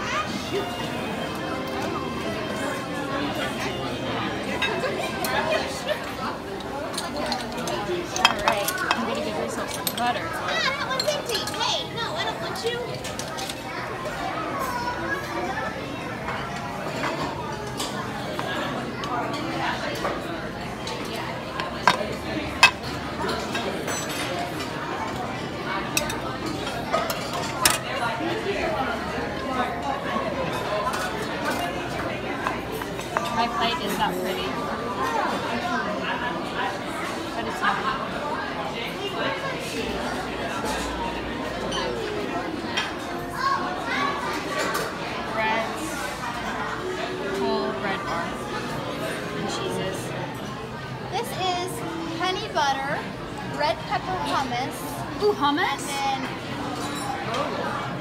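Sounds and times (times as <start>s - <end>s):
crowd chatter: 0.0s - 58.0s
dishes and utensils clinking: 4.4s - 14.2s, 16.2s - 28.8s, 29.6s - 35.8s, 40.4s - 52.6s, 53.8s - 58.0s
metal spoons clinking on pans: 6.9s - 10.2s.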